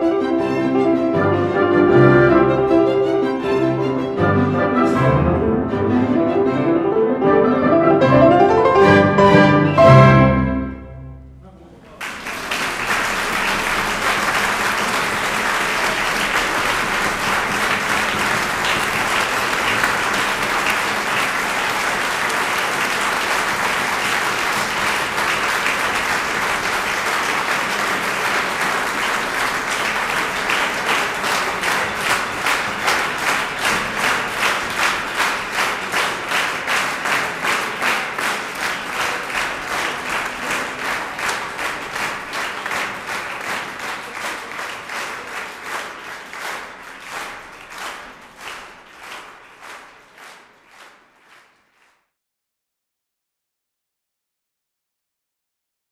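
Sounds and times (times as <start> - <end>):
audience applauding: 11.9 - 52.2
rhythmic clapping in unison: 12.0 - 52.2.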